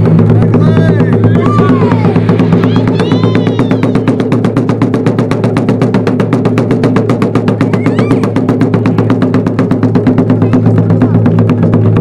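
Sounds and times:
taiko drums struck rapidly: 0:00.0 - 0:12.0.

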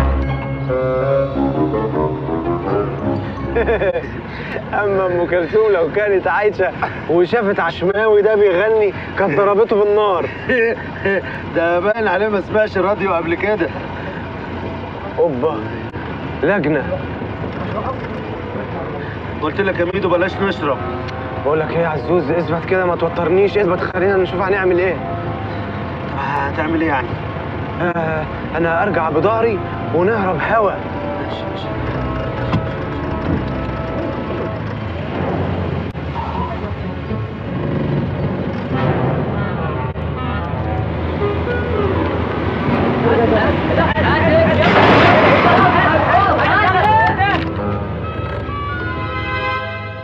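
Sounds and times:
car engine and road noise: 0:00.0 - 0:50.0
car engine running: 0:31.0 - 0:38.7.

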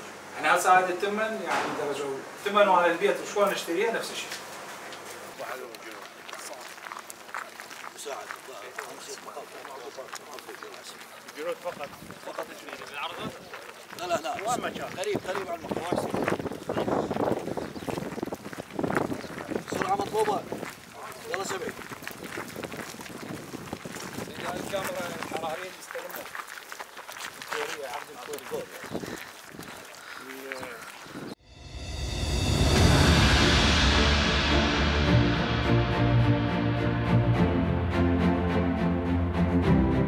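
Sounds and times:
men speaking: 0:00.3 - 0:04.4, 0:05.2 - 0:06.8, 0:07.9 - 0:17.2, 0:19.3 - 0:21.9, 0:24.2 - 0:26.3, 0:27.4 - 0:29.3, 0:30.0 - 0:30.9
men talking indistinctly: 0:00.4 - 0:04.4, 0:05.3 - 0:06.7, 0:08.0 - 0:17.0, 0:19.3 - 0:21.8, 0:24.2 - 0:26.3, 0:27.5 - 0:29.2, 0:30.2 - 0:30.9
footsteps on gravel: 0:03.5 - 0:31.4.

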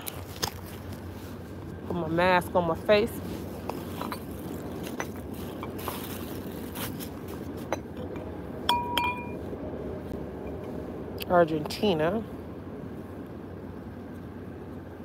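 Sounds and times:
glassware clinking in a bag: 0:03.7 - 0:06.3, 0:07.6 - 0:09.4
sharp ringing glass clinks: 0:08.7 - 0:09.4.

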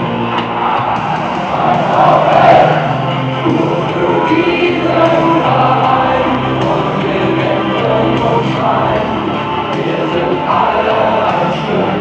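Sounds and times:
music with singing over loudspeakers: 0:00.0 - 0:12.0.

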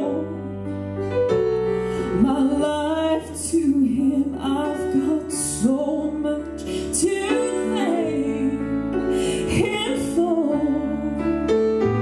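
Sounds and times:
woman singing: 0:00.0 - 0:00.7, 0:02.0 - 0:11.6
grand piano: 0:00.0 - 0:12.0.

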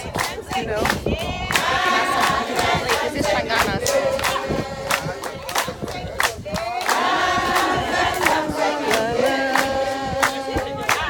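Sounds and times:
sharp beats keeping time: 0:00.0 - 0:06.2, 0:06.9 - 0:11.0
women singing in unison: 0:00.0 - 0:11.0.

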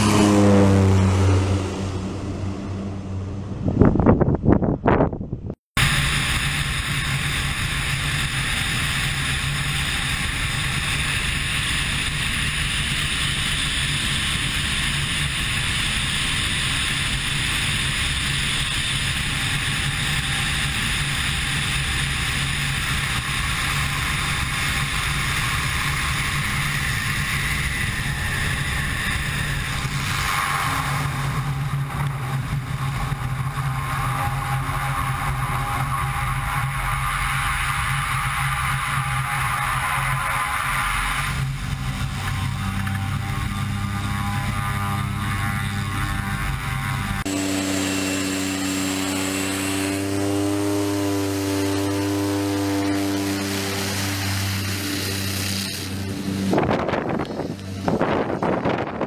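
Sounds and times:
wind rushing: 0:00.0 - 0:07.5, 0:55.8 - 0:59.0
propeller plane engine droning: 0:00.0 - 0:59.0.

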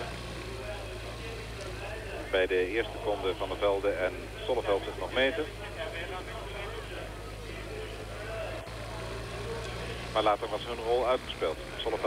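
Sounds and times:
vehicle engine noise: 0:00.0 - 0:12.0
videotape hum and hiss: 0:00.0 - 0:12.0.

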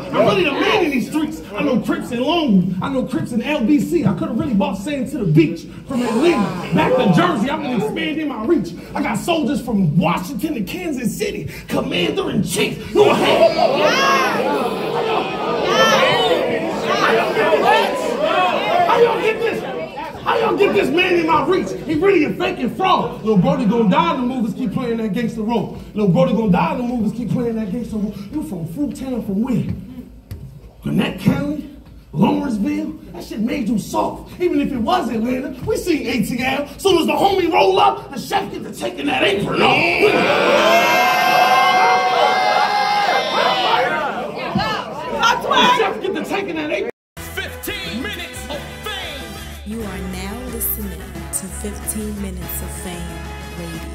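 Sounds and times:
crowd talking and shouting: 0:00.0 - 0:04.9, 0:05.6 - 0:09.7, 0:11.9 - 0:25.4, 0:38.8 - 0:53.9
voices chattering: 0:13.0 - 0:24.7.

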